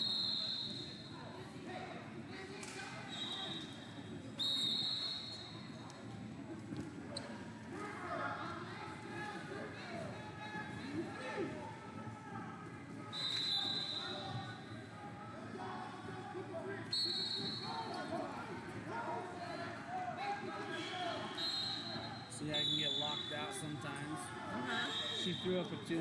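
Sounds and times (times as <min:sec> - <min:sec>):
referee's whistle blasts: 0:00.0 - 0:01.0, 0:03.1 - 0:03.8, 0:04.4 - 0:05.4, 0:13.1 - 0:14.3, 0:16.9 - 0:17.8, 0:21.2 - 0:23.5, 0:24.7 - 0:25.8
murmur of crowd voices: 0:00.0 - 0:26.0.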